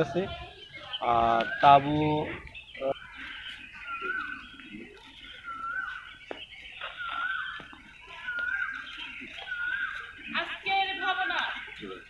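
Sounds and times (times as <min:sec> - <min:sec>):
bird call rising and falling: 0:00.0 - 0:10.7.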